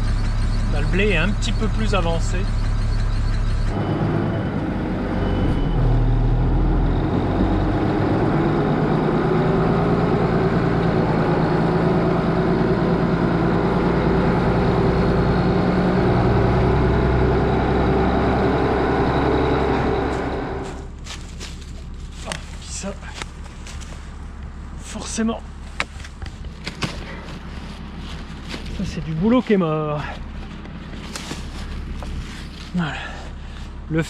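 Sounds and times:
tractor diesel engine running: 0.0 - 34.0.

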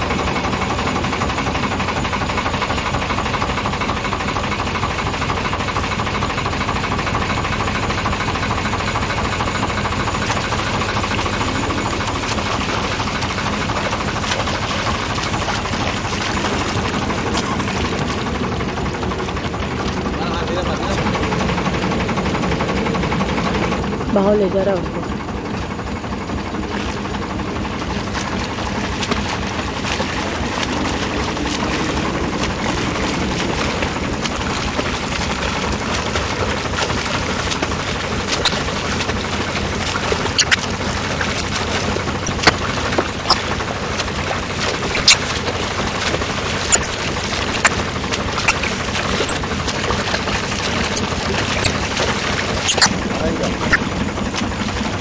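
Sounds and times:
boat motor and water rushing: 0.0 - 55.0
short sharp clicks or splashes: 8.8 - 20.0, 28.0 - 54.9.

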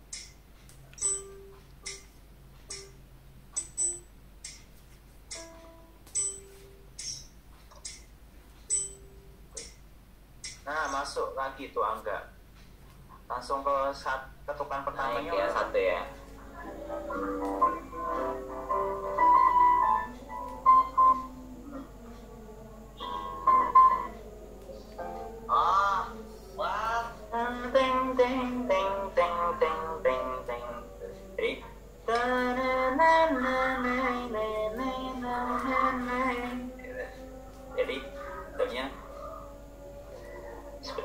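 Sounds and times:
simple piano melody: 1.0 - 4.6, 5.3 - 7.2, 15.1 - 21.9, 22.8 - 26.6
man singing and counting: 14.5 - 16.2, 25.5 - 32.7, 34.0 - 39.0.

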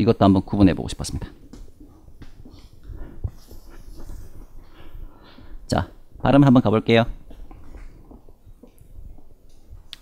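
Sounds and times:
eraser rubbing on chalkboard: 2.5 - 4.8.

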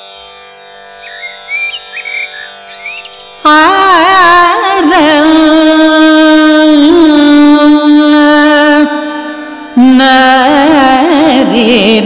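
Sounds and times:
tanpura drone: 0.0 - 12.0
bird chirping: 1.0 - 3.4.

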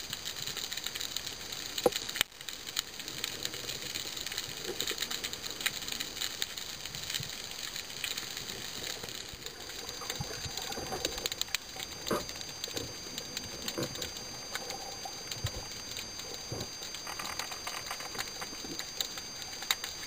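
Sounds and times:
snapping shrimp crackle: 0.0 - 20.0.

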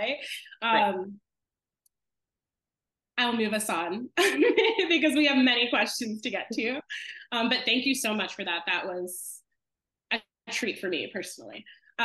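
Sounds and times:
woman speaking: 0.0 - 1.2, 3.2 - 9.4.

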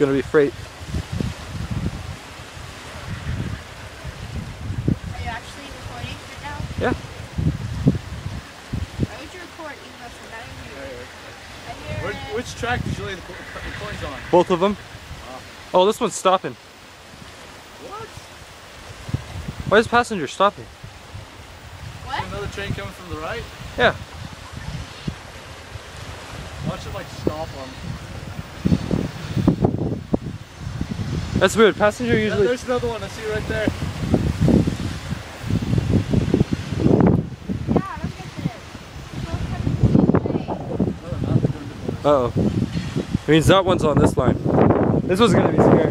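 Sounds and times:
steady wind: 0.0 - 45.9
surf lapping at shoreline: 0.0 - 45.9.

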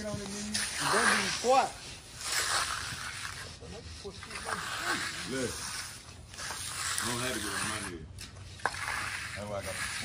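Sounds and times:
broom scraping across wet concrete: 0.0 - 10.0.

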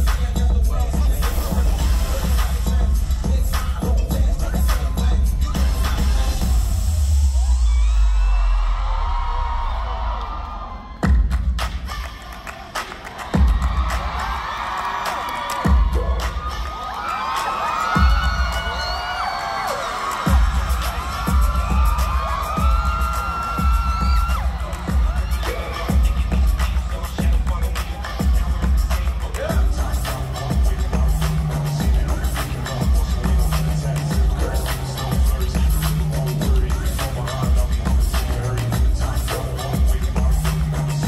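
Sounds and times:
crowd screaming and cheering: 0.0 - 41.0
live concert music: 0.0 - 41.0.

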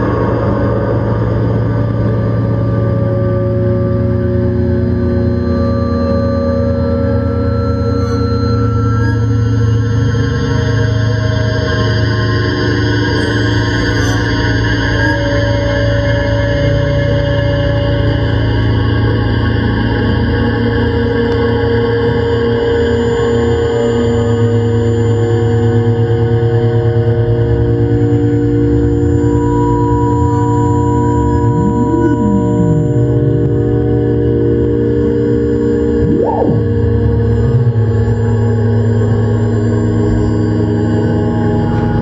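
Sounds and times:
electronic drone tones: 0.0 - 42.0
gliding electronic tone: 29.0 - 42.0.

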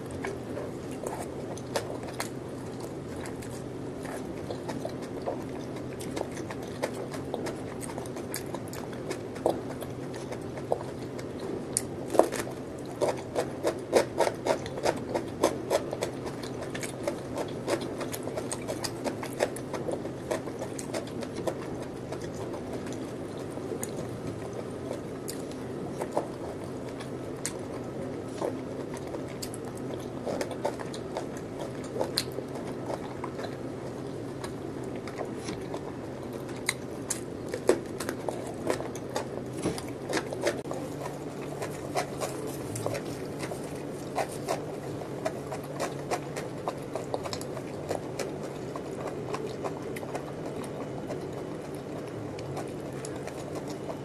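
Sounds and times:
chewing crunchy cucumber: 0.0 - 54.0.

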